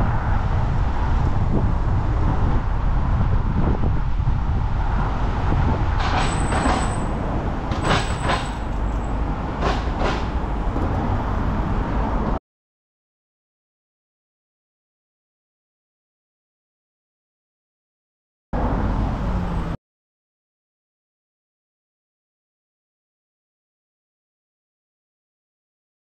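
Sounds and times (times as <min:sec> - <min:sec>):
wind on helmet camera: 0:00.0 - 0:08.1
road traffic: 0:00.0 - 0:12.4, 0:18.6 - 0:19.8.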